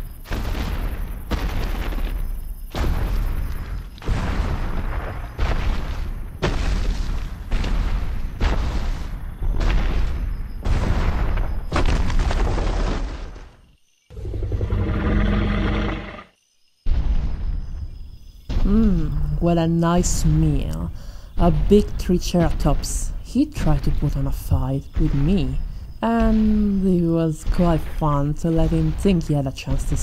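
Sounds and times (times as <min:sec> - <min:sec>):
heavy booming footsteps: 0:00.0 - 0:13.7
deep dinosaur roar: 0:14.1 - 0:16.3.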